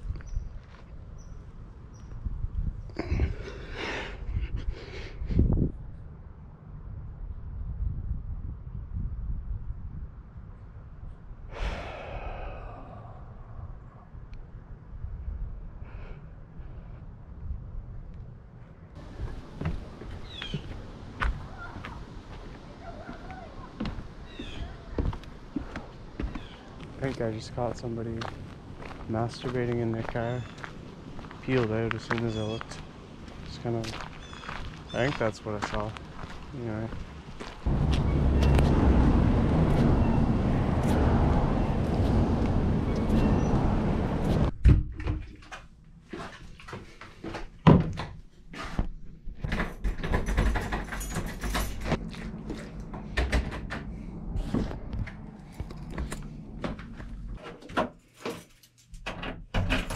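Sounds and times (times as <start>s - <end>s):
rumbling wind noise: 0.0s - 18.1s, 35.6s - 44.7s, 49.0s - 57.4s
footsteps on wooded path: 19.0s - 39.9s
bird chirps: 20.2s - 20.7s, 24.2s - 24.8s, 34.1s - 35.1s, 42.8s - 43.6s
low steady rumble: 37.5s - 44.5s, 51.7s - 57.4s.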